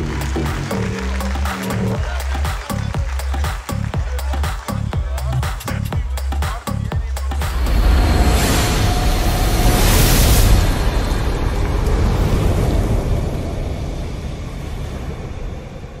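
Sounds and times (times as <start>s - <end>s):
fire whoosh sound effect: 7.5s - 16.0s.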